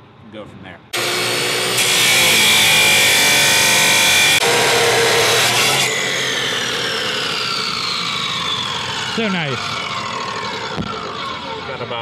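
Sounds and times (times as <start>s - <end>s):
chop saw cutting steel: 1.0s - 12.0s
motor winding down whine: 1.0s - 12.0s.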